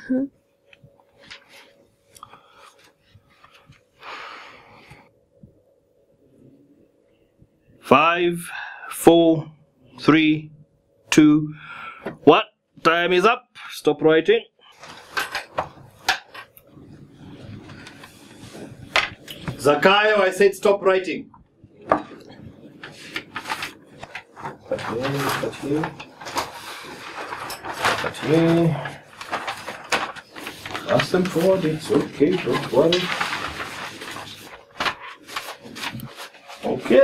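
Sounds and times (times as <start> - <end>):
paper sheets rustling: 1.1 - 1.8, 14.7 - 16.5, 17.1 - 20.8, 22.7 - 37.0.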